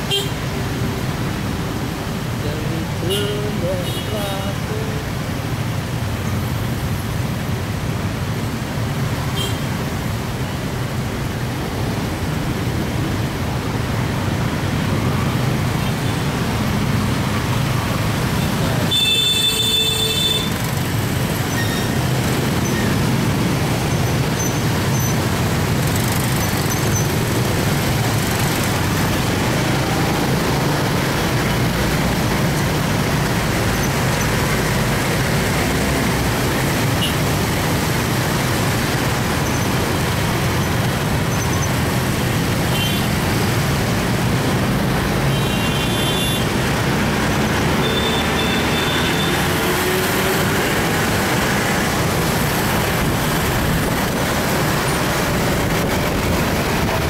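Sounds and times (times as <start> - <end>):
heavy traffic with motorcycles: 0.0 - 57.0.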